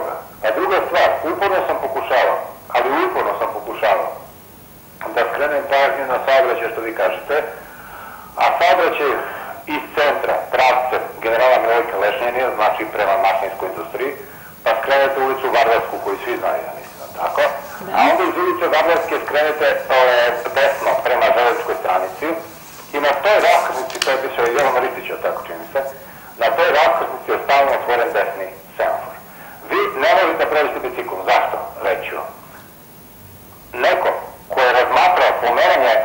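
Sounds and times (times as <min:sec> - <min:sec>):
man talking over telephone: 0:00.0 - 0:04.3, 0:05.0 - 0:32.5, 0:33.7 - 0:36.0.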